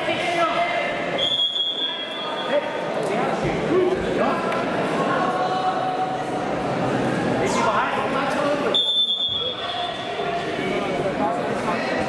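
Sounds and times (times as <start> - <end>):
chatter of many voices: 0.0 - 12.0
referee's whistle blast: 8.7 - 9.9.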